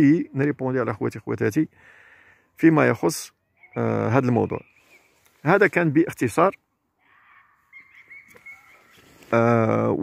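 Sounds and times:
high bird chirps: 0:03.3 - 0:05.4, 0:07.0 - 0:09.3.

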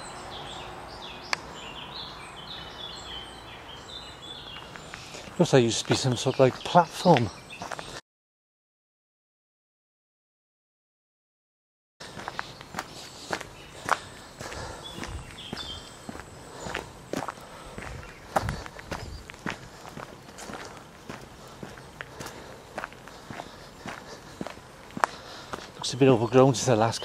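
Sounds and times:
footsteps on dirt path: 0:03.8 - 0:08.0, 0:12.0 - 0:27.0.

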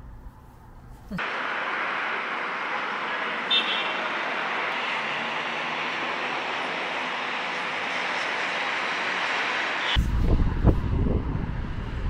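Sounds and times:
city traffic noise: 0:00.0 - 0:12.0.

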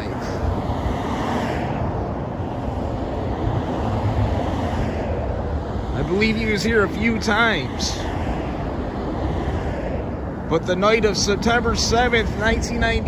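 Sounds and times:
busy road traffic: 0:00.0 - 0:13.0
vehicle passing: 0:00.0 - 0:13.0.

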